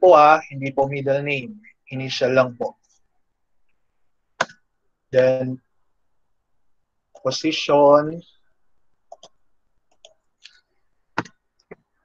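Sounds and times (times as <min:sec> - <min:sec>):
computer clicks: 0:09.1 - 0:10.3.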